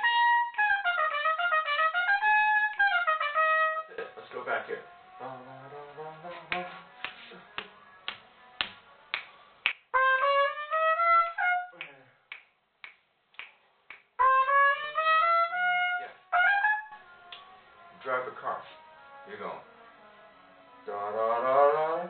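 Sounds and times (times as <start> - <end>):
trumpet playing: 0.0 - 8.6, 9.9 - 11.8, 14.2 - 22.0
finger snaps: 6.5 - 9.9, 11.8 - 14.1.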